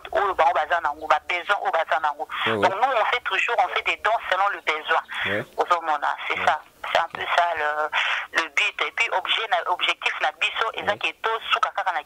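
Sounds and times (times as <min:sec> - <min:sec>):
person talking over telephone: 0:00.0 - 0:12.0.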